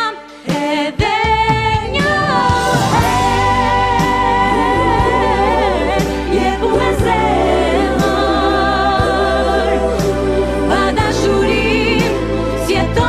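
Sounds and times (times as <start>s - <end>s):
woman singing a pop ballad: 0.0s - 13.0s
band accompaniment: 1.3s - 9.3s.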